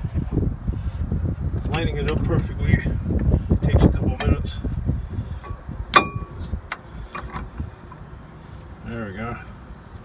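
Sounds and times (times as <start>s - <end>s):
metallic clicks of brake parts: 5.4s - 8.2s.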